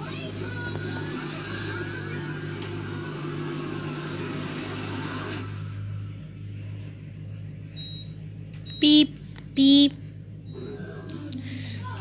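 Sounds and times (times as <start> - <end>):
cartoon soundtrack from television: 0.0 - 6.9, 9.7 - 12.0
steady low hum: 0.0 - 12.0.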